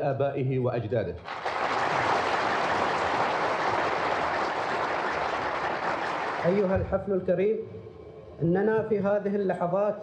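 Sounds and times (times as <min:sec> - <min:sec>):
audience applauding: 0:01.2 - 0:06.8.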